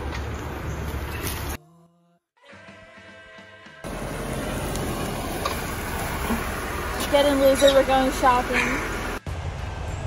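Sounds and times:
car rolling past: 3.9 - 10.0.

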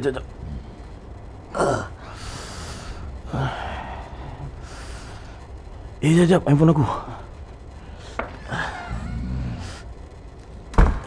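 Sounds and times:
person breathing heavily: 0.4 - 6.0
person grunting: 1.5 - 2.1.

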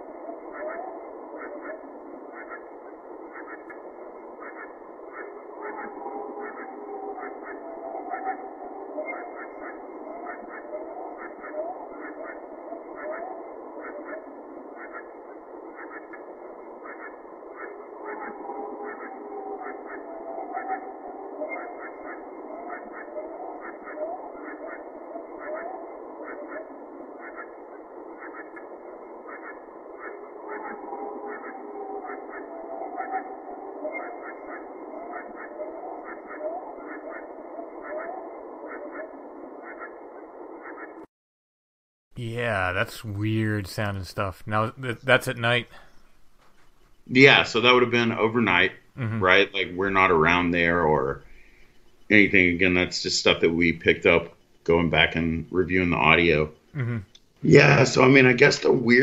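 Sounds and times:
night chorus rapid chirping: 0.0 - 41.0, 42.2 - 59.0
animal howling and whooping: 30.5 - 39.9.

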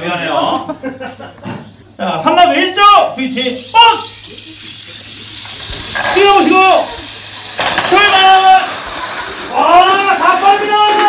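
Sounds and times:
steady high hiss: 1.9 - 10.8.

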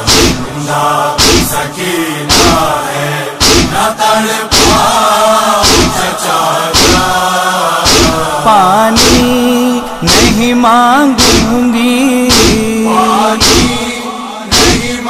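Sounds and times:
chest-beating thumps: 0.0 - 0.5, 1.2 - 1.6, 2.3 - 2.7, 3.4 - 3.8, 4.5 - 4.9, 5.6 - 6.0, 6.8 - 7.1, 7.8 - 8.3, 8.9 - 10.6, 11.2 - 11.6, 12.3 - 12.8, 13.4 - 13.9, 14.5 - 15.0
voices chanting a lament: 0.0 - 15.0.

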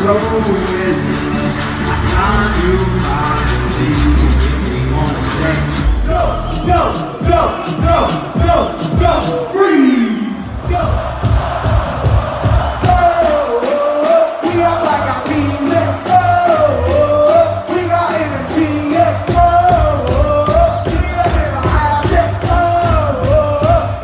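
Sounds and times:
live dance-pop music: 0.0 - 24.0.

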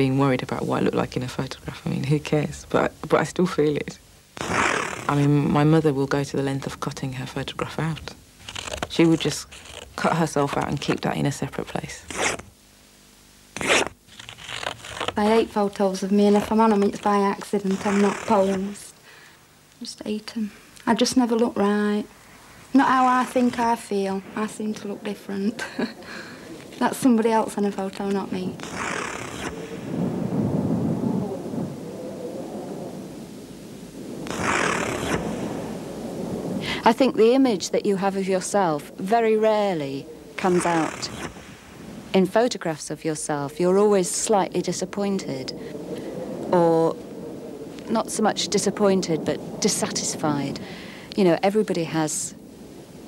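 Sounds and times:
scissors cutting photo paper: 8.4 - 10.9, 13.6 - 15.2
person speaking: 8.9 - 12.2, 14.9 - 19.0, 19.8 - 28.7, 36.6 - 41.2.

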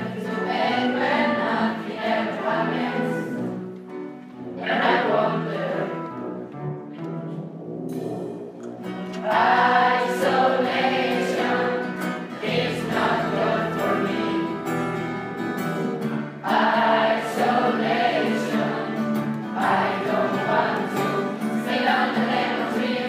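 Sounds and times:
choir singing: 0.0 - 3.7, 4.4 - 6.2, 9.1 - 15.1, 16.0 - 23.0
instrumental accompaniment: 0.0 - 23.0.

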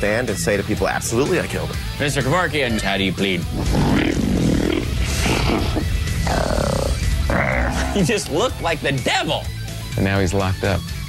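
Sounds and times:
background music: 0.0 - 11.0
growling demonic voice: 3.4 - 8.3.

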